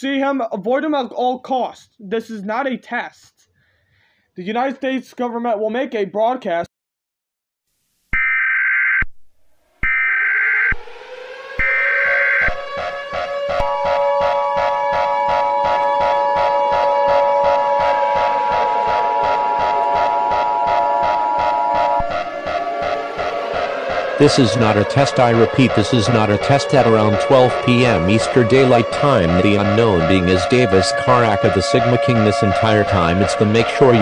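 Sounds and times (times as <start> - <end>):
electronic background music: 9.9 - 34.0
two-tone attention signal: 11.6 - 12.8, 13.5 - 34.0.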